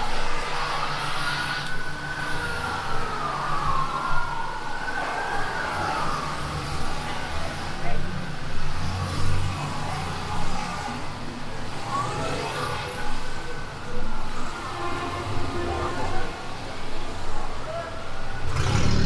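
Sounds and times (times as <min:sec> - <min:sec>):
emergency vehicle siren wailing: 0:00.0 - 0:18.7
city street traffic hum: 0:00.0 - 0:19.0.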